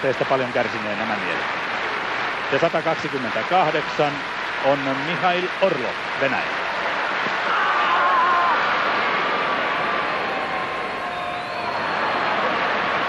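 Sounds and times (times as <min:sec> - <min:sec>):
stadium crowd noise: 0:00.0 - 0:13.0
long wavering shout: 0:07.5 - 0:08.7.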